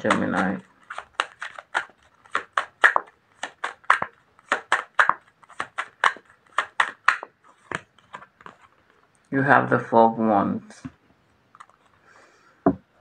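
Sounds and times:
cards being shuffled: 0.0s - 9.1s, 11.6s - 12.0s.

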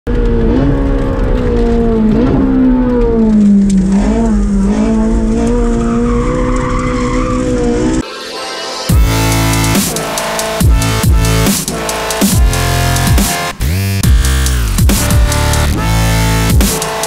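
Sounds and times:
car engine running hard: 0.1s - 8.0s.

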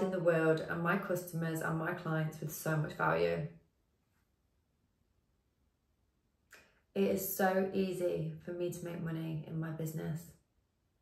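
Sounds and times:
woman speaking: 0.0s - 3.5s, 7.0s - 10.4s.

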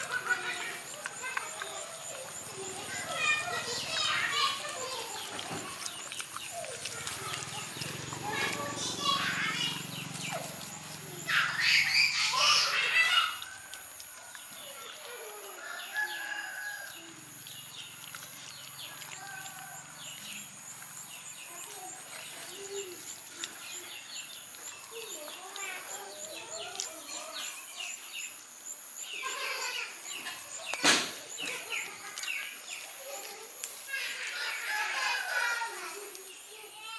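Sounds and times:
chickens calling: 0.0s - 36.3s.

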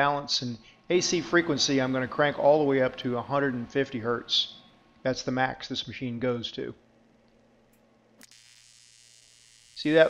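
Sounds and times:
faint low hum: 0.0s - 8.4s
welding arc buzzing: 7.3s - 10.0s.

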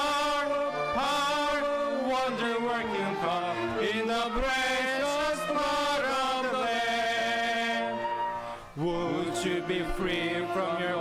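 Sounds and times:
man singing into a microphone: 0.0s - 8.2s, 8.8s - 11.0s
congregation singing a hymn: 0.0s - 11.0s.

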